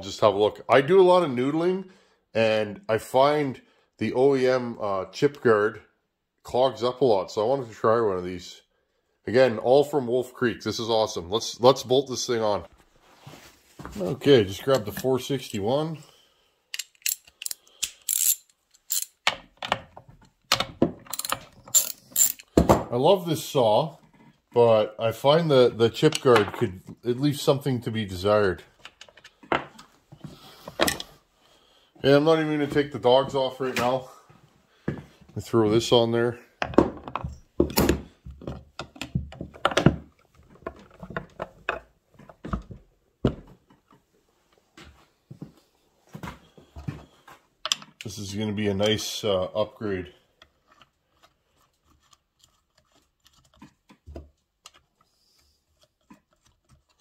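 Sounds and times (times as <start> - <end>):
metal clicks: 16.7 - 22.5
socket ratchet clicking: 16.8 - 19.3.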